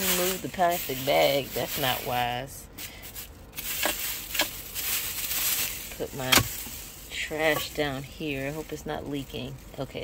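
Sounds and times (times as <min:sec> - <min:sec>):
plastic bag rustling: 0:00.0 - 0:10.0
sharp crinkles: 0:00.0 - 0:10.0.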